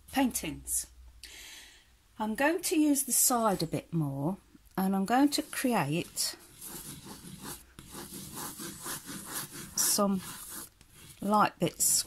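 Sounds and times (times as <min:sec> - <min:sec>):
crayon rubbing on paper: 0:05.3 - 0:12.0.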